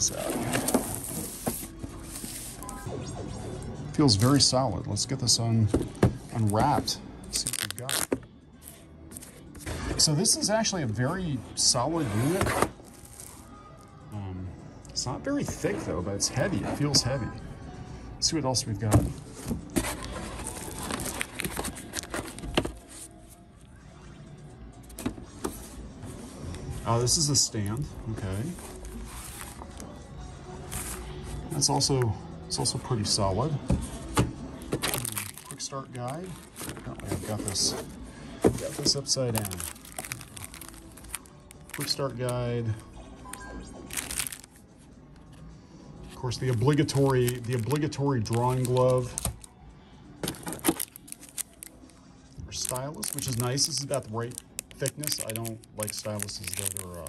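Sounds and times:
plastic wrap rustling: 38.6 - 42.0, 43.9 - 44.5, 52.5 - 57.0
plastic packet crinkling: 39.3 - 42.0, 43.9 - 44.5, 50.6 - 51.8, 52.5 - 57.0.

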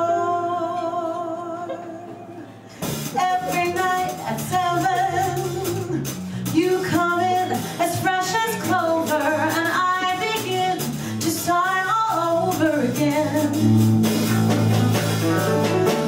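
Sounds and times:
woman singing: 0.0 - 2.4, 3.0 - 13.9
small band playing: 1.7 - 16.0.

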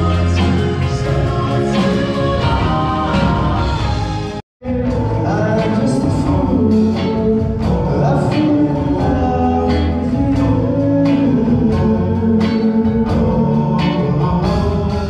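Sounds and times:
drums: 0.0 - 15.0
group of singers: 0.0 - 15.0
live band playing: 0.0 - 15.0.

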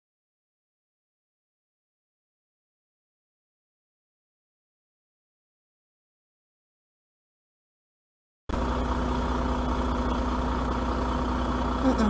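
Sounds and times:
vehicle engine idling: 8.5 - 12.0.

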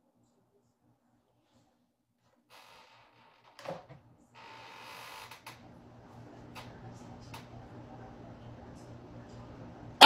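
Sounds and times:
desk fan running: 5.3 - 10.0.

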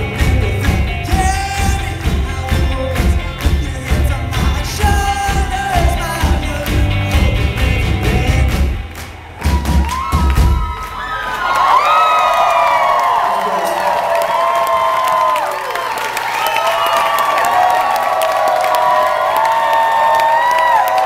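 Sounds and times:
rock band low hits: 0.0 - 10.7
crowd cheering and whooping: 8.9 - 21.0.

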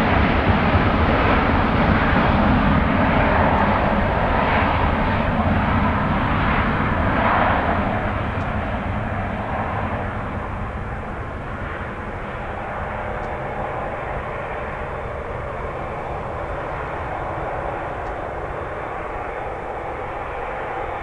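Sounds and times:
jet engines at takeoff thrust: 0.0 - 21.0.

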